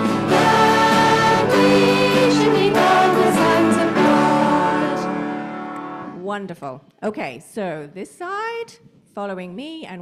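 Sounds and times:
band chord with guitar ringing: 0.0 - 6.2
woman speaking: 6.1 - 10.0.

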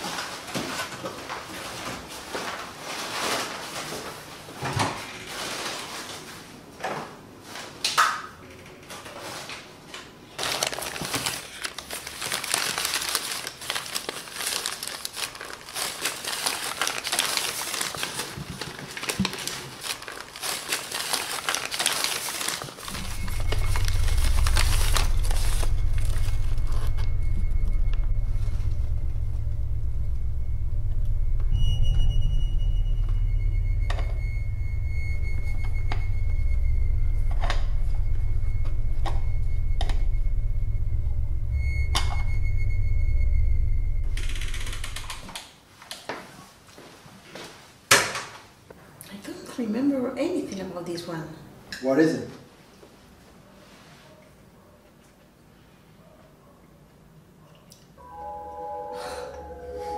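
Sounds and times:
newspaper crinkling and rustling: 0.0 - 4.5, 5.2 - 6.7, 10.3 - 27.1
faint thin high tone: 22.9 - 44.2, 58.0 - 59.9
low droning score: 22.9 - 45.3.

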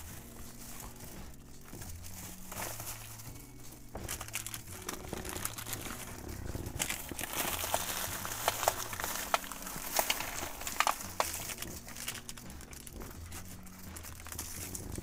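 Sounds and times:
crinkling and rustling: 0.0 - 15.0.

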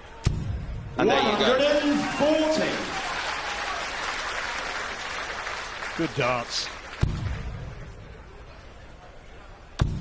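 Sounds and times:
audience applauding: 1.7 - 7.5.

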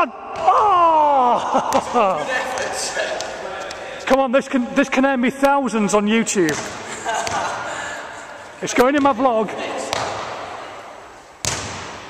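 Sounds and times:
basketball bouncing in hall: 0.0 - 3.8, 6.2 - 8.0, 8.6 - 12.0.

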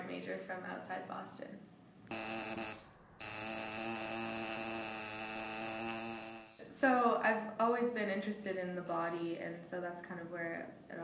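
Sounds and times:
tattoo machine buzzing: 2.1 - 6.9, 8.4 - 9.7.

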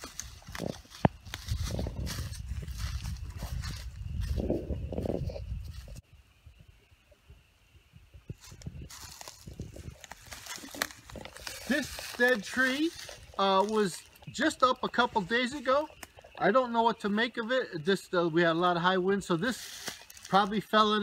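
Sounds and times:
footsteps crunching dry leaves: 0.0 - 6.0, 8.3 - 16.4, 18.9 - 21.0
wind rumbling on microphone: 0.0 - 16.4.

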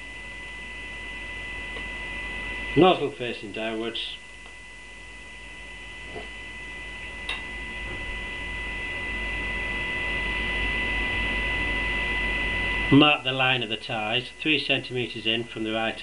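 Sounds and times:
electrical mains hum: 0.0 - 16.0.

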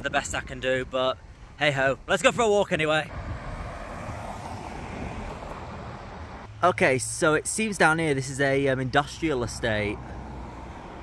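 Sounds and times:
road traffic rumble: 3.1 - 11.0.

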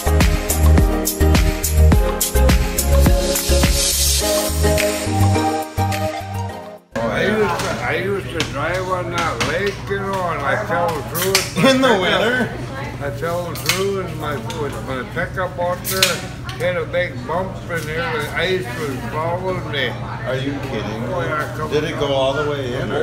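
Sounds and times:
music: 0.0 - 7.0.

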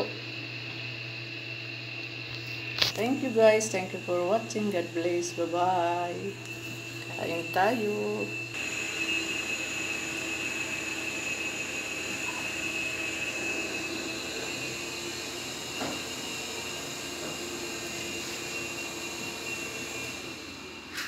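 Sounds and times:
droning hum with high whine: 0.0 - 21.0.

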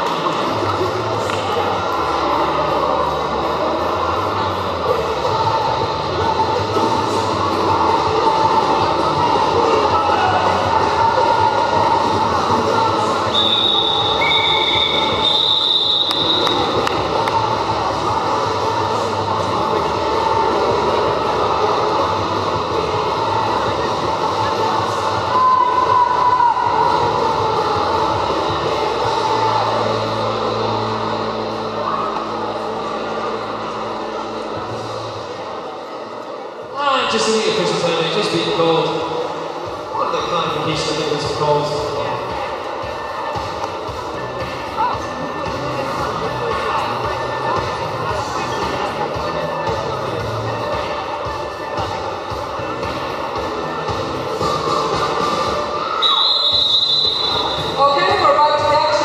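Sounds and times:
sports hall noise: 0.0 - 59.0
referee whistle blasts: 13.3 - 16.8, 56.0 - 57.8.

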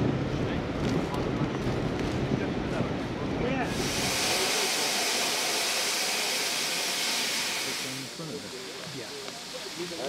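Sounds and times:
steam venting hiss: 3.7 - 10.0.

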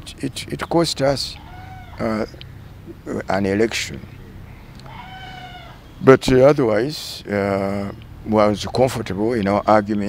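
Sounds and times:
animal call: 1.4 - 2.4, 4.8 - 6.0.

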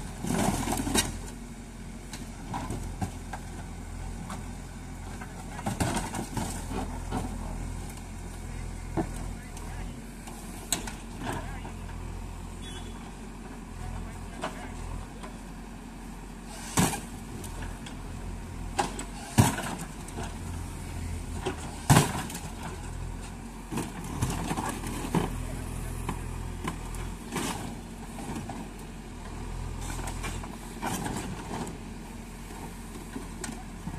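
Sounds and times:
diesel engine rumbling: 0.0 - 33.9.

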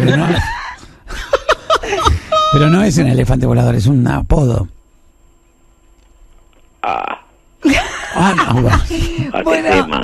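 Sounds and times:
faint steady hum: 0.0 - 10.0
person grunting: 6.8 - 7.3.

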